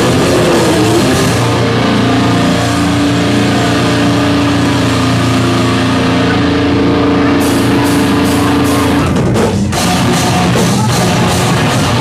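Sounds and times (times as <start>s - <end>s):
distorted electric guitars chord: 0.0s - 12.0s
drumming: 0.0s - 12.0s.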